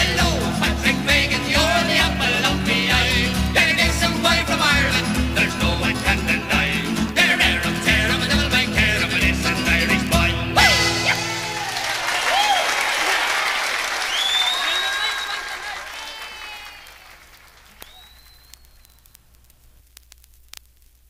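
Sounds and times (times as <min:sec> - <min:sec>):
audience applause and cheering: 0:10.6 - 0:19.1
vinyl record surface noise: 0:17.2 - 0:21.0.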